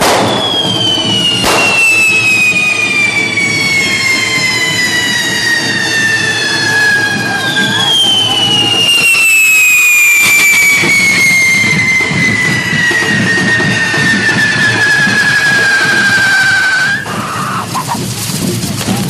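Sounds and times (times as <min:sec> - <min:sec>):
firework whistle sliding down: 0:00.0 - 0:18.0
rushing hiss of sparks: 0:16.8 - 0:19.0.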